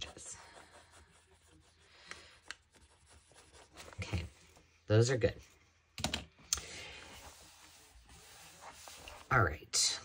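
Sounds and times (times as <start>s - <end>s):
hands rubbing book pages: 0.0s - 4.6s, 7.0s - 9.5s.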